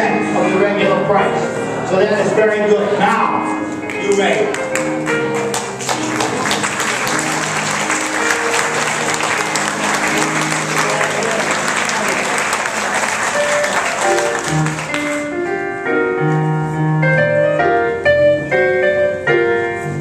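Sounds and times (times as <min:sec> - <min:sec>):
background music: 0:00.0 - 0:20.0
audience applauding: 0:03.9 - 0:15.3.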